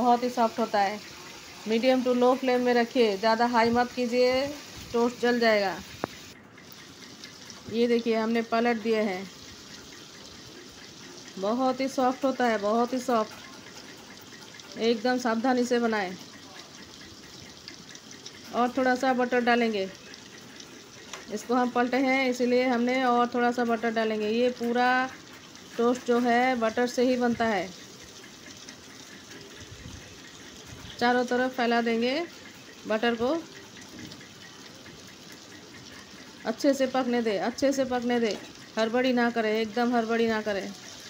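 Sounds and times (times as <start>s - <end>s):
bread frying sizzle: 0.0s - 41.0s.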